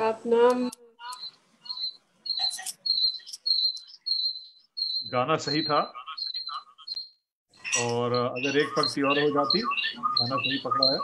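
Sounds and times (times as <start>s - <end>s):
high chirping notes: 1.0s - 11.0s.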